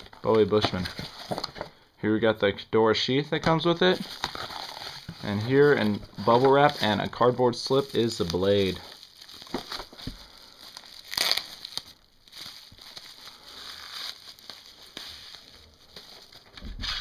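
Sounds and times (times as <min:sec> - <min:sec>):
bubble wrap crinkling and rustling: 0:00.0 - 0:01.7, 0:03.6 - 0:17.0.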